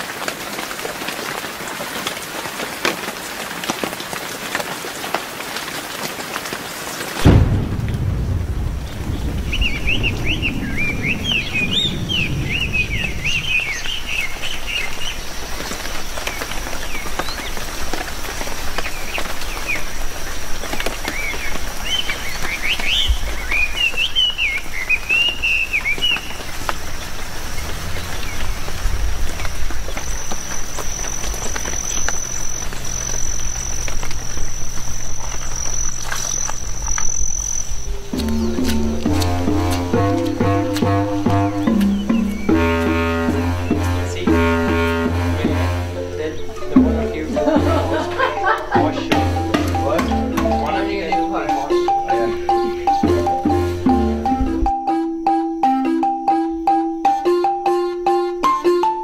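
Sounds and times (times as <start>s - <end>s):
rain: 0.0s - 54.9s
birds chirping: 6.4s - 59.0s
deep rumble: 7.2s - 16.0s, 26.4s - 50.8s
high insect drone: 10.3s - 59.0s.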